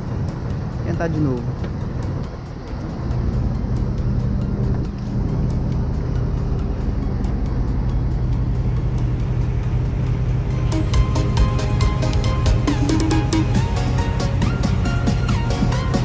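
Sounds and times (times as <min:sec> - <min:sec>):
background music: 0:00.0 - 0:16.0
crane engine running: 0:00.0 - 0:16.0.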